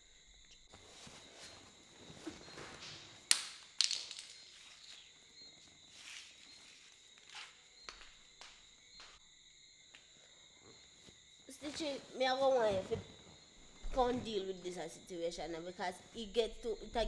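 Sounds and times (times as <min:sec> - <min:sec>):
crickets chirping: 0:00.0 - 0:17.0
person moving on leather sofa: 0:00.7 - 0:03.2.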